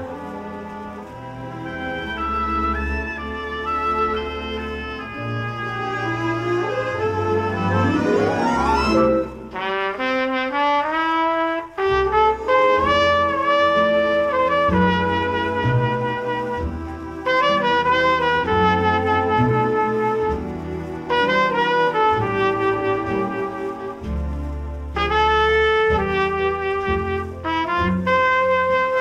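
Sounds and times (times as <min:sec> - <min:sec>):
jazz orchestra: 0:00.0 - 0:29.0
sustained brass chords: 0:00.0 - 0:29.0
trumpet melody: 0:00.0 - 0:29.0
low bass line: 0:11.9 - 0:29.0.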